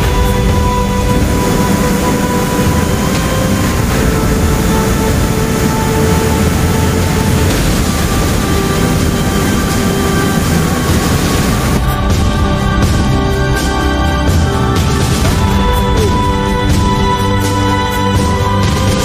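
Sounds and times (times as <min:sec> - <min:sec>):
faint music: 0:00.0 - 0:19.0
waterfall and rushing rapids: 0:00.0 - 0:19.0.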